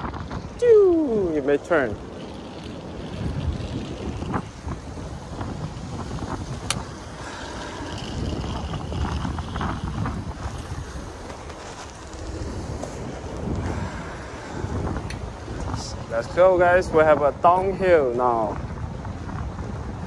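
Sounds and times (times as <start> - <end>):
low traffic rumble: 0.0 - 20.0
wind buffeting microphone: 0.0 - 20.0.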